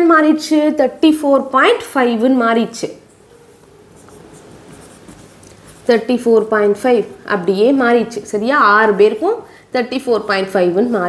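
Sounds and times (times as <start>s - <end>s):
marker pen rubbing on whiteboard: 3.5s - 6.5s.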